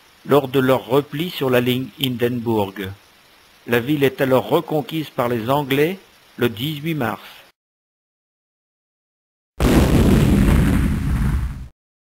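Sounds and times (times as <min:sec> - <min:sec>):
explosion rumble: 0:09.6 - 0:11.7.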